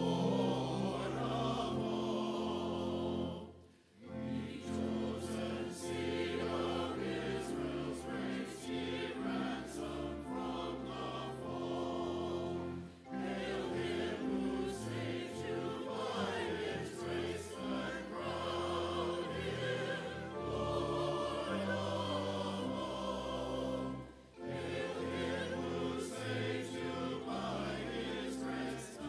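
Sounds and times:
church choir singing: 0.0s - 29.0s
organ chords: 0.0s - 29.0s.

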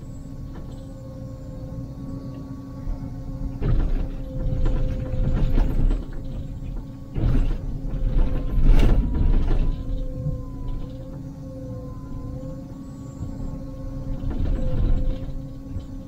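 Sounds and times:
excavator engine and hydraulic whine: 0.0s - 16.0s.

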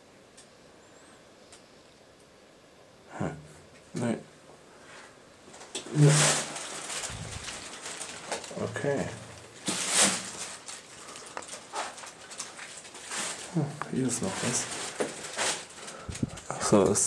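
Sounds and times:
scuffs and rustles of movement: 4.8s - 16.8s
man murmuring: 5.9s - 6.5s, 13.5s - 14.7s.

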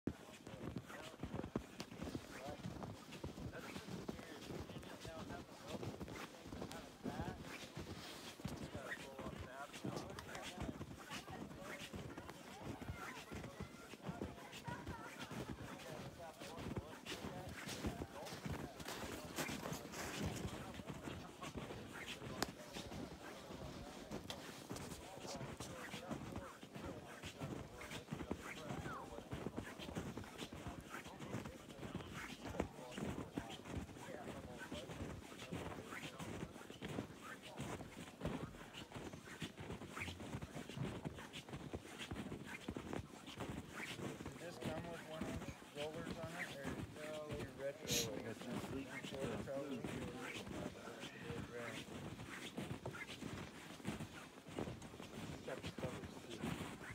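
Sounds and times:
people talking: 0.1s - 41.5s, 42.3s - 54.0s, 55.1s - 56.9s
footsteps crunching on snow: 0.1s - 56.9s.

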